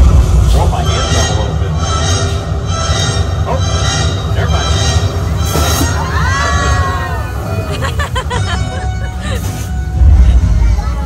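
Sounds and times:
gas flame roaring: 0:00.0 - 0:11.0
music: 0:00.0 - 0:11.0
faint voices: 0:00.4 - 0:02.5, 0:03.3 - 0:11.0.

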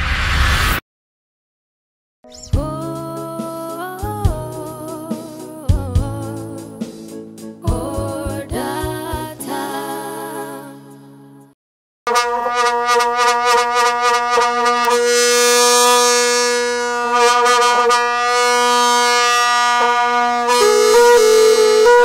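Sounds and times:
wind instrument holding a note: 0:12.1 - 0:22.0.

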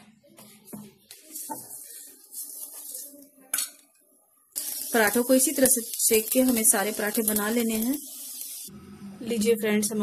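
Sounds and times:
flatbread sizzling in oil: 0:01.2 - 0:03.2, 0:04.6 - 0:08.7.

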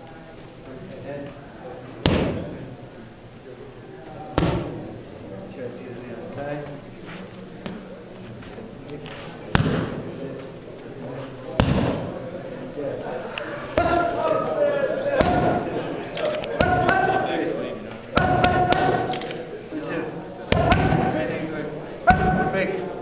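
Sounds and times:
boxing gloves hitting focus mitts: 0:02.0 - 0:02.6, 0:04.3 - 0:04.8, 0:09.5 - 0:10.1, 0:11.6 - 0:12.1, 0:20.5 - 0:21.1.

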